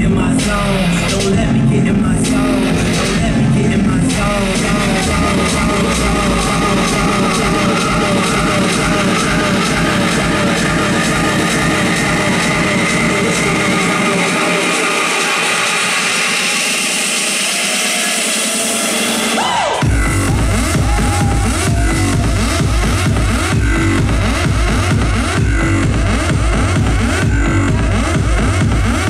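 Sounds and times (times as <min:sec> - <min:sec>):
electronic dance music: 0:00.0 - 0:29.0.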